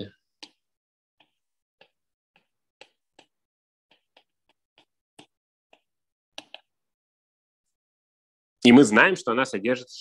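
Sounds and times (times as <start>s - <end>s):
stylus tapping on tablet screen: 0.3s - 7.0s.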